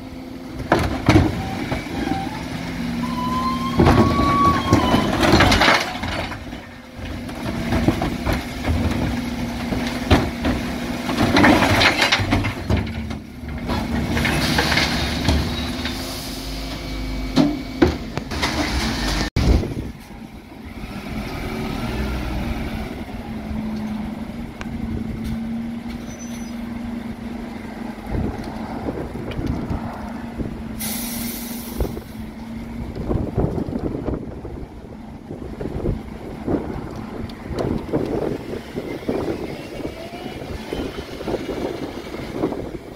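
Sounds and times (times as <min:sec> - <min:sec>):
lorry engine humming: 0:12.3 - 0:42.9
air brakes hissing: 0:15.7 - 0:16.8, 0:30.8 - 0:32.2
bin lift clattering and hissing: 0:30.8 - 0:32.2.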